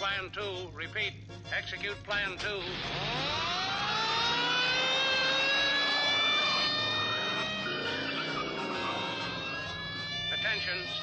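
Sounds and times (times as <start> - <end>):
police siren wailing: 2.6 - 11.0.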